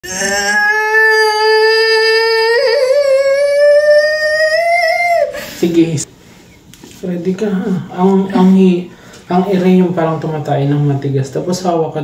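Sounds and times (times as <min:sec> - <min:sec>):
woman crying out in strain: 0:00.0 - 0:05.5.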